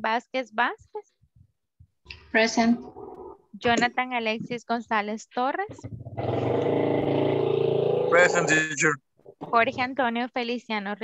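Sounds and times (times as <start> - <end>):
engine drone: 6.2 - 8.9.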